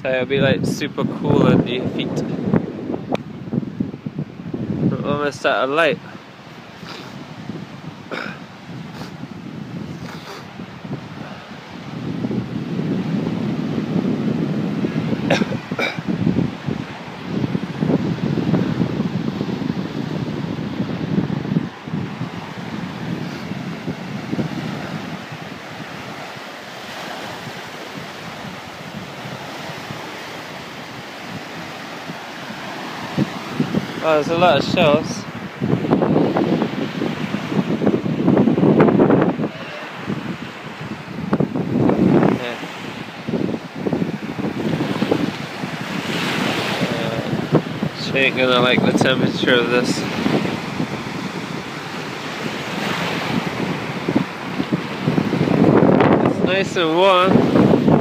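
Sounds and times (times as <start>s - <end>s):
waves washing onto shore: 0.0s - 58.0s
wind buffeting microphone: 0.0s - 58.0s.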